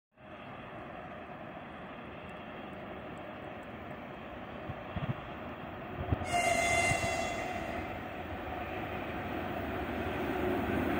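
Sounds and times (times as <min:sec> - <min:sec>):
distant freight train rumble: 0:00.2 - 0:10.9.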